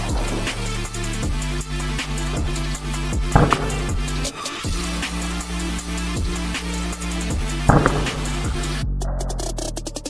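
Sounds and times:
electronic music with steady beat: 0.0s - 10.0s.

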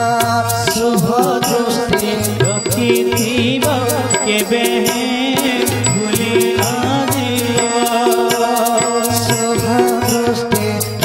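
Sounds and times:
tabla beat: 0.0s - 11.0s.

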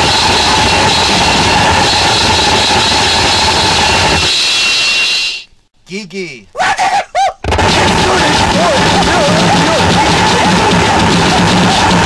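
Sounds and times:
short pitched vocal yelp: 6.4s - 7.4s
loud distorted noise with warbling tones: 7.4s - 12.0s.

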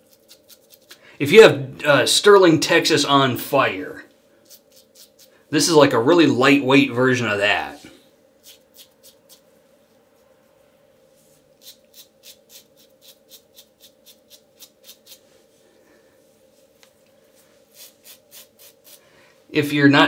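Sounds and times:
razor scraping through stubble: 0.0s - 1.0s, 4.4s - 5.3s, 8.4s - 9.5s, 11.6s - 15.2s, 17.7s - 19.0s.

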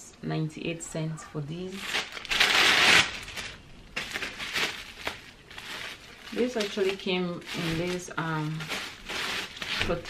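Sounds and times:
bubble wrap bag crinkling: 1.7s - 10.0s.

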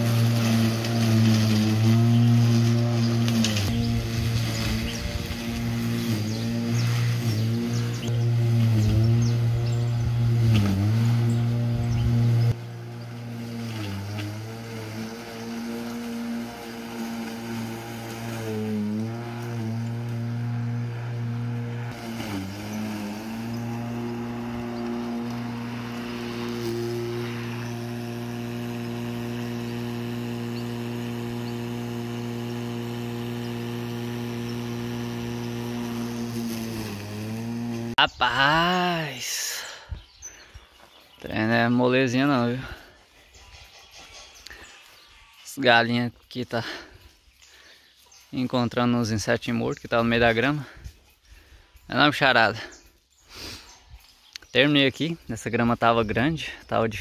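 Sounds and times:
electric lawn mower running: 0.0s - 38.0s.

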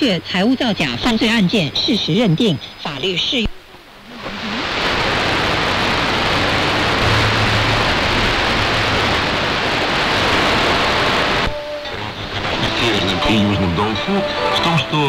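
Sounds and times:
radio static hiss: 0.0s - 15.0s
radio broadcast audio: 0.1s - 15.0s.

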